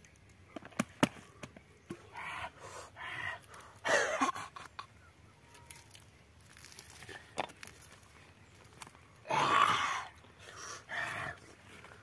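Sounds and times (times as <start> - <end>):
breathy rasps: 9.2 - 11.4.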